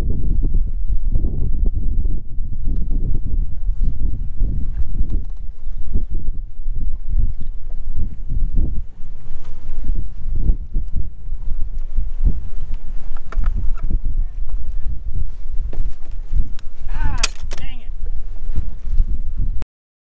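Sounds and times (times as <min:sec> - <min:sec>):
wind buffeting microphone: 0:00.0 - 0:19.6.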